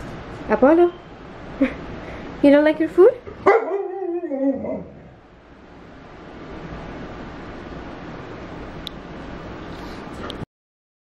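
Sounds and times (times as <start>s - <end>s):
low room noise: 0.0s - 10.4s.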